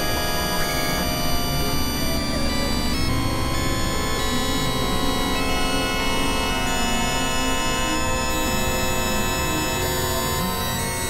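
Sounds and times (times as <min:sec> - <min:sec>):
synthesizer drone music: 0:00.0 - 0:11.0.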